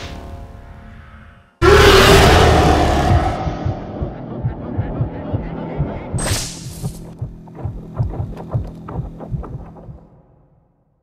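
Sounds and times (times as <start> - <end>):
pulsing low beat: 2.2 - 10.4.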